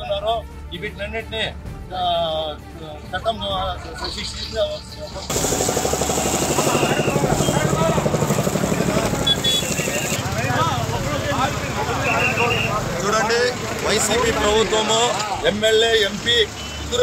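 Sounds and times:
fire hose spraying water: 5.3 - 15.2, 15.9 - 17.0
engine running: 5.3 - 17.0
men's voices: 6.5 - 17.0.

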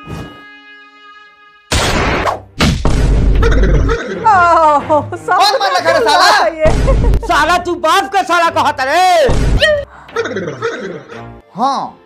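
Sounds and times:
gunshot: 1.7 - 3.5, 9.3 - 9.6
loud bang: 1.7 - 3.6, 9.3 - 9.7.

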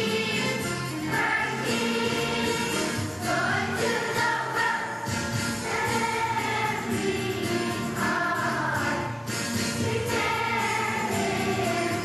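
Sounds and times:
children's choir singing: 0.0 - 12.0
musical accompaniment: 0.0 - 12.0.

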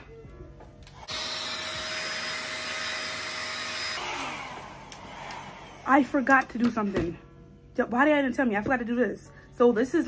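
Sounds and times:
hair dryer running: 0.8 - 6.5.

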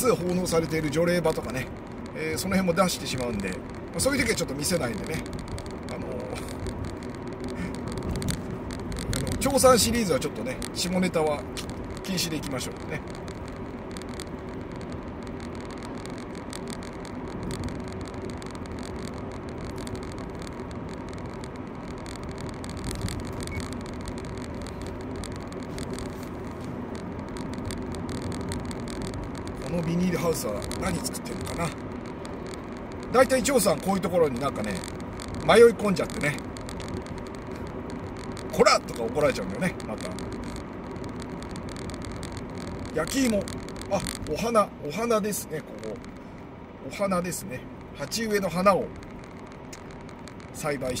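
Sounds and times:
car engine and tyre noise: 0.0 - 51.0.

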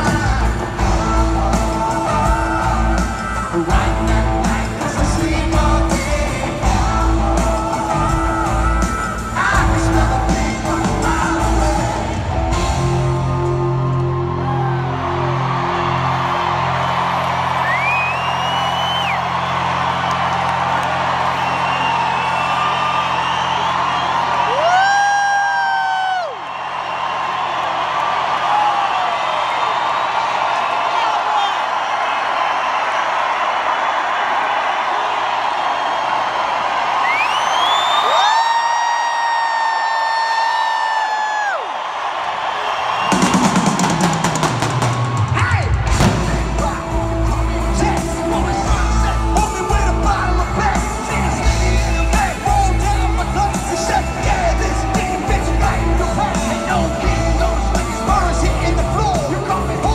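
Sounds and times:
band with drums playing: 0.0 - 14.1, 43.0 - 59.9
crowd cheering: 0.0 - 59.9.

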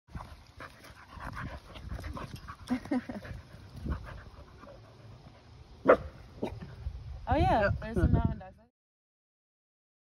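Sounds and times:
dogs panting and mouthing: 0.1 - 5.6.

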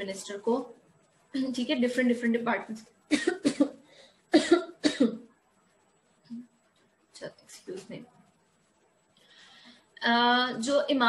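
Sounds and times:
woman coughing: 3.1 - 3.8, 4.4 - 5.2.

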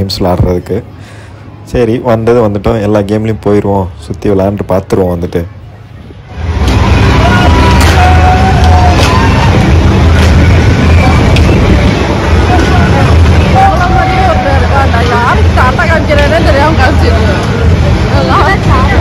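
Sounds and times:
fairground ride machinery drone: 0.0 - 19.0
people chattering: 0.0 - 19.0.

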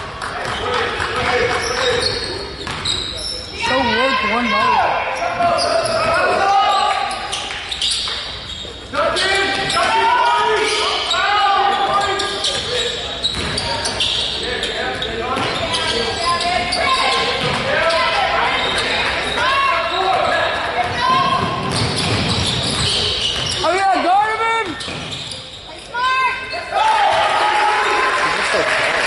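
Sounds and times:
sneakers squeaking: 0.4 - 26.8
people talking: 3.2 - 6.9.

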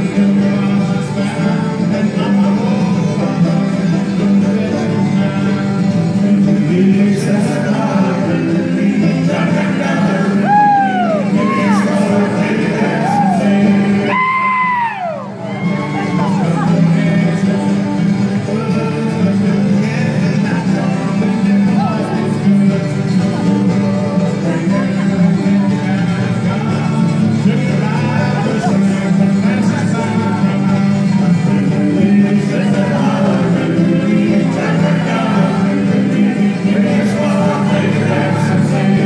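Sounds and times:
string band playing: 0.0 - 39.0
voices singing in harmony: 0.0 - 39.0.

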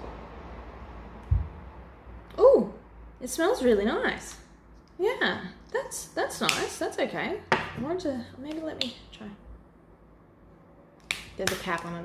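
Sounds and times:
dull low thump of jar: 1.3 - 1.7.

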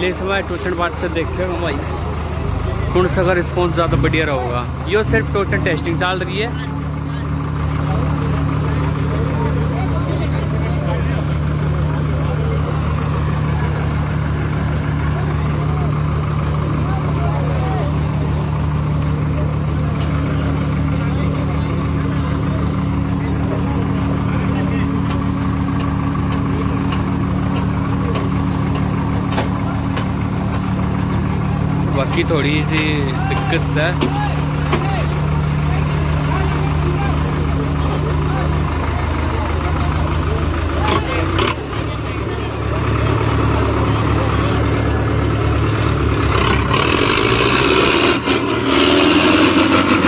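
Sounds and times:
crowd chatter: 0.0 - 50.0
diesel tractor engine running: 0.0 - 50.0.

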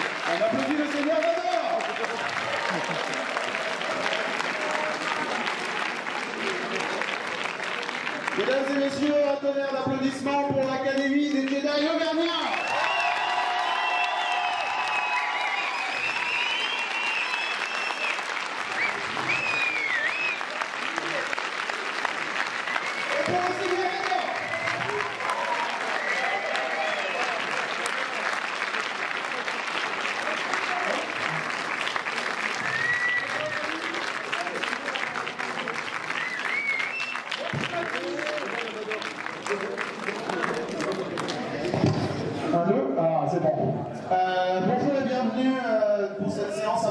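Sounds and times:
audience applauding: 0.0 - 42.4.

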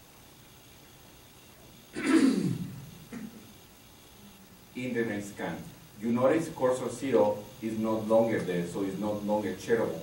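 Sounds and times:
person coughing: 2.0 - 3.4.

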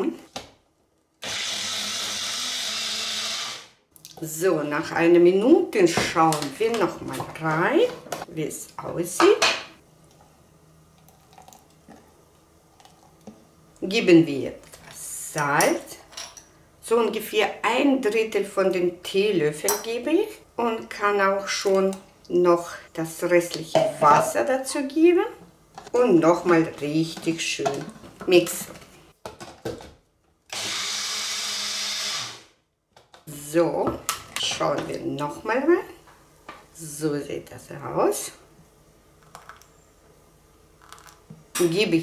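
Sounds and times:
blender motor whirring: 1.2 - 3.8, 30.5 - 32.5.

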